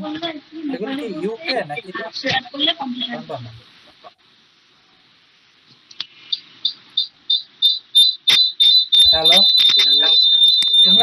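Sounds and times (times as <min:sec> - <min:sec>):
high-pitched electronic beeps: 0:06.4 - 0:11.0.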